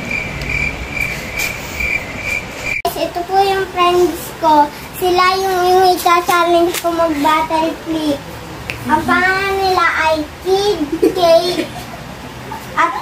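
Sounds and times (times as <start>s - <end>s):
child singing: 2.9s - 8.2s.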